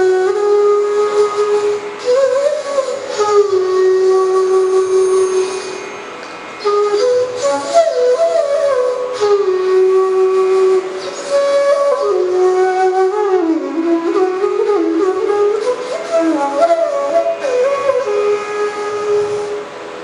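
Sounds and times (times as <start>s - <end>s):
bamboo flute melody: 0.0s - 6.0s, 6.6s - 20.0s.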